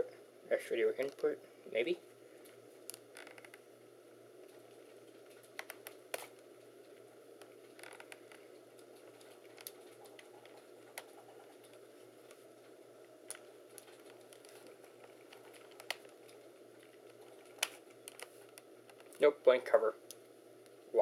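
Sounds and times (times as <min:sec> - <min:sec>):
faint room hum: 0:00.0 - 0:21.0.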